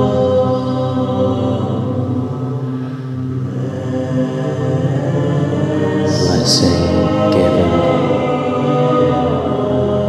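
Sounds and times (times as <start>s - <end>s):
choir holding sustained chords: 0.0s - 10.0s.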